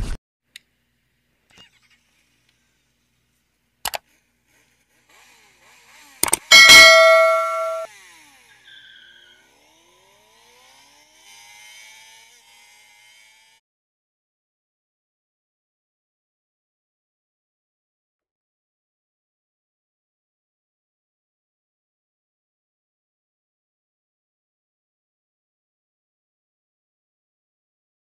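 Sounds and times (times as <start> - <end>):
bell-like ding: 6.5 - 7.9
soft high shimmer: 6.5 - 7.9.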